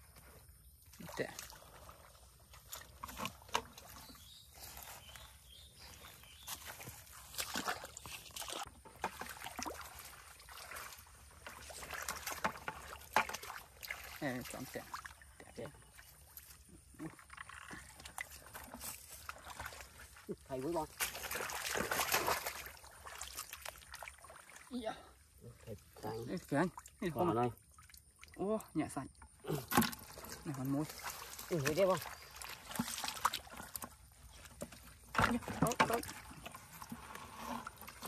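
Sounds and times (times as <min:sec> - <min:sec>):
wet squelches: 0:00.1 - 0:38.0
hands splashing in muddy water: 0:05.9 - 0:15.3, 0:17.6 - 0:24.7, 0:29.4 - 0:38.0.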